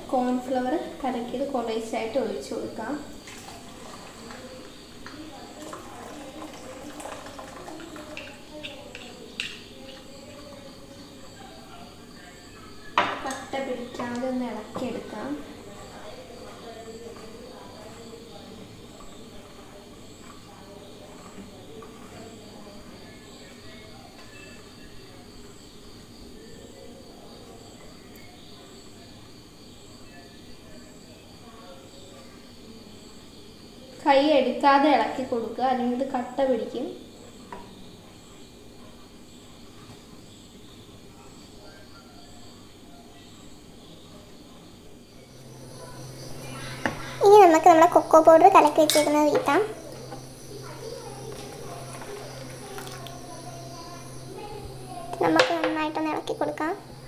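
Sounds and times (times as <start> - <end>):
low voices: 0.0 - 25.5, 45.2 - 57.0
spoon knocking and scraping pot: 48.6 - 50.2
spoon stirring in a metal pot: 48.6 - 50.3.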